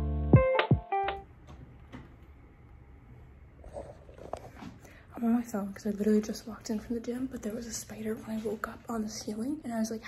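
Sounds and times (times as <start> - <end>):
piano music: 0.0 - 1.2
soft rustles: 7.7 - 9.3.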